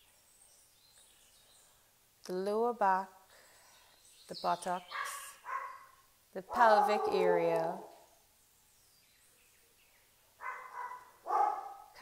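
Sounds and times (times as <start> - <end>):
dog barking: 4.9 - 6.0, 6.6 - 8.0, 10.4 - 12.0.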